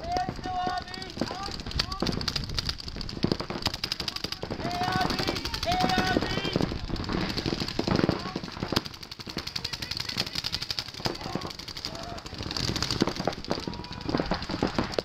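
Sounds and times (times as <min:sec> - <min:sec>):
voices shouting: 0:00.0 - 0:02.2, 0:04.0 - 0:08.6, 0:09.3 - 0:15.0
paintball markers firing: 0:00.0 - 0:15.0.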